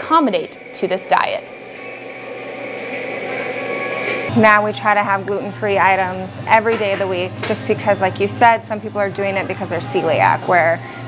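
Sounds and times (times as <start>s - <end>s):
faint high tones: 0.0s - 5.0s
steady hum: 0.0s - 11.0s.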